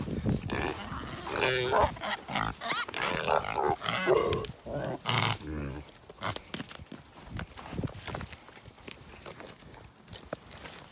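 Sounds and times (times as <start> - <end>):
pigs snuffling and chewing: 0.0 - 10.9
pig grunt: 0.5 - 6.4.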